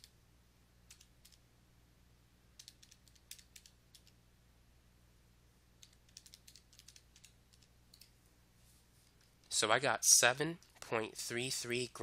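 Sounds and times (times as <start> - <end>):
calculator keys tapping: 2.6 - 4.1, 5.8 - 8.1.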